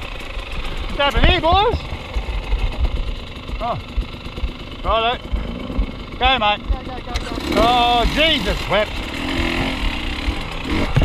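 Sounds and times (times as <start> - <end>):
dirt bike engines idling: 0.0 - 11.0
rider calling out: 0.8 - 2.2, 3.5 - 11.0.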